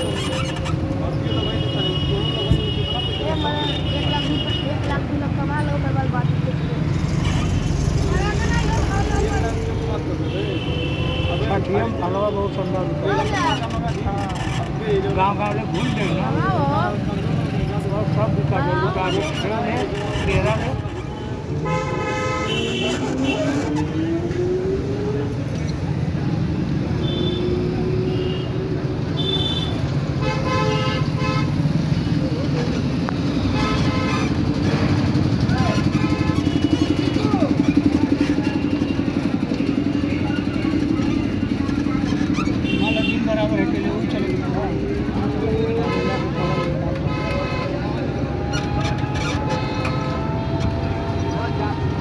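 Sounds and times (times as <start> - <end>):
motorcycle and road traffic rumble: 0.0 - 52.0.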